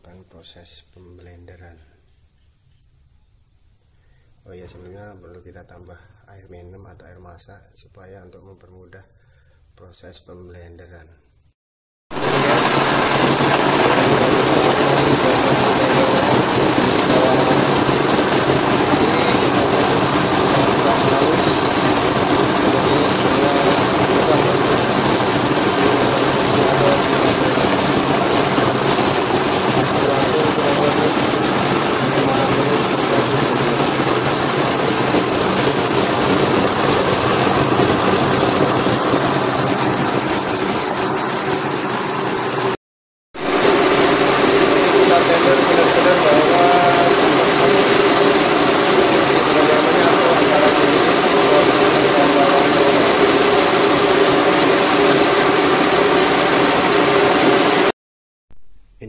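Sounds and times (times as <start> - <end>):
blender motor whining: 12.1 - 42.8, 43.4 - 57.9.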